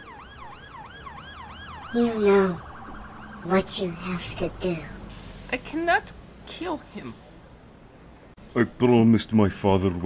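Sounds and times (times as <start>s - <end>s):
siren yelping: 0.0s - 4.6s.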